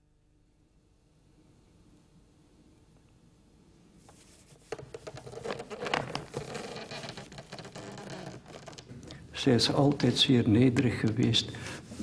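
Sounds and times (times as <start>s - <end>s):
rustling: 4.0s - 8.9s.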